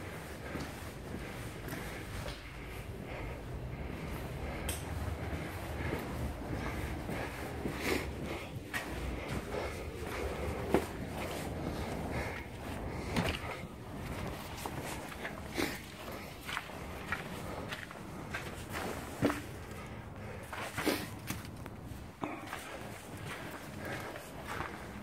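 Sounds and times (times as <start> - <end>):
footsteps on wood and gravel: 0.1 - 25.0.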